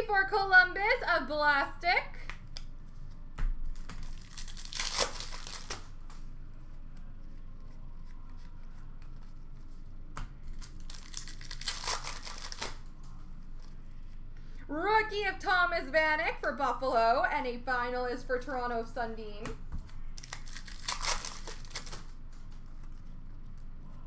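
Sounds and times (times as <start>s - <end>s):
card packs rustling and tearing: 3.8s - 5.9s, 10.5s - 12.8s, 20.2s - 22.5s.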